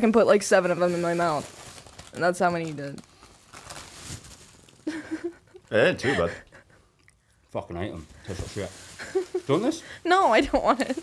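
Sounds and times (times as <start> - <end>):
plastic bags crinkling: 0.6 - 5.3, 7.9 - 11.0.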